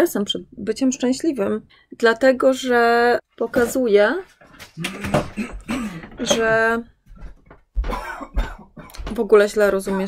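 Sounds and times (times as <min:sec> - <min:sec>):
woman coughing: 0:05.0 - 0:06.4, 0:07.8 - 0:09.1.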